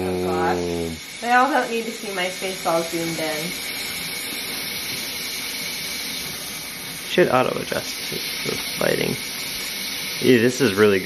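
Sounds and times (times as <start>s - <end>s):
steady rushing hiss: 0.0s - 11.0s.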